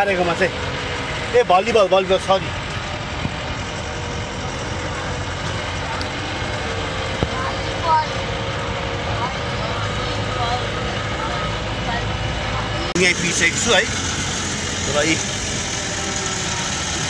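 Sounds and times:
vehicle engine running: 0.0s - 17.0s.

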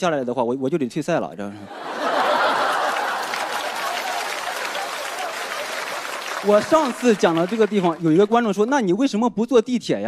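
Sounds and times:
audience laughing: 1.6s - 8.0s
audience applauding: 1.8s - 8.7s.

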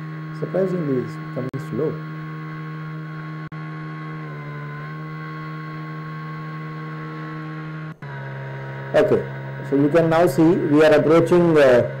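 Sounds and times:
airship motors humming: 0.0s - 12.0s.

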